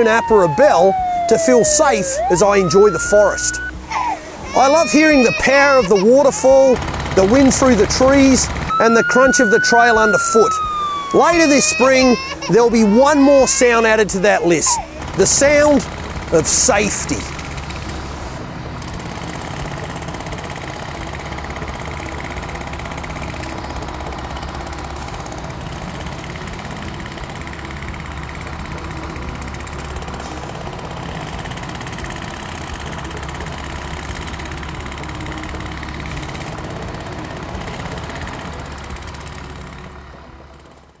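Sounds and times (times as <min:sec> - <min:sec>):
engine running with deep drone: 0:00.0 - 0:41.0.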